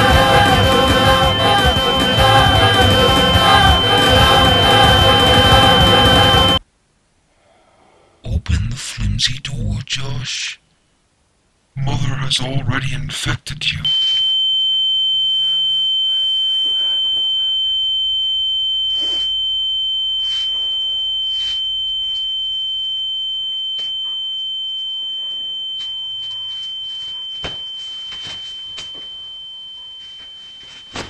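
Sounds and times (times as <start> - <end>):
fainter lower tone: 0.0 - 6.6, 13.7 - 31.0
high-pitched electronic ringing tone: 0.0 - 6.6, 13.8 - 31.0.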